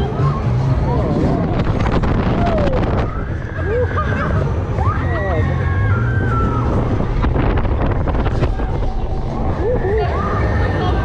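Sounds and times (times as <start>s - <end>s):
wind noise on microphone: 0.0s - 11.0s
riders screaming and squealing: 2.2s - 7.2s, 8.3s - 11.0s.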